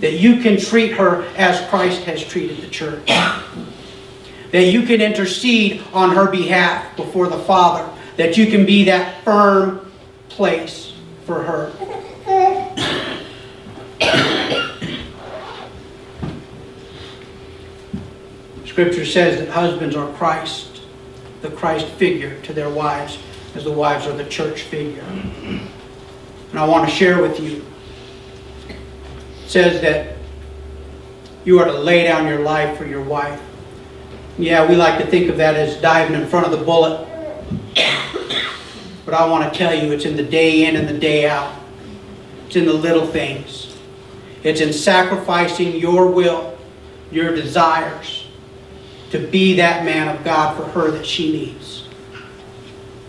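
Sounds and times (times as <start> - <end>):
person coughing: 3.1 - 3.6, 11.8 - 15.2, 25.1 - 25.8, 37.7 - 39.1.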